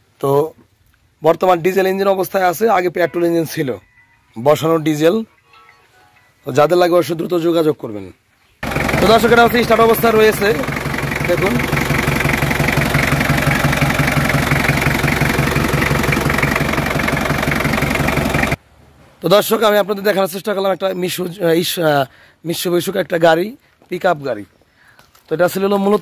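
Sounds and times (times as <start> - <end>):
man talking: 0.2 - 0.6, 1.2 - 3.8, 4.4 - 5.3, 6.5 - 8.2, 8.8 - 11.8, 19.2 - 24.5, 25.3 - 26.0
diesel engine idling: 8.6 - 18.6.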